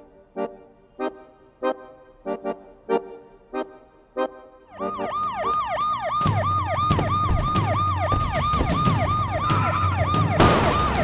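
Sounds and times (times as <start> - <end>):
electronic yelp siren: 4.7 - 11.0.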